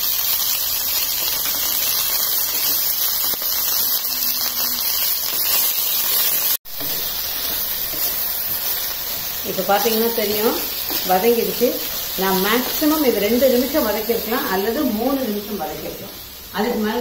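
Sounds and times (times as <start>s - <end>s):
vegetables sizzling in a pan: 0.0s - 17.0s.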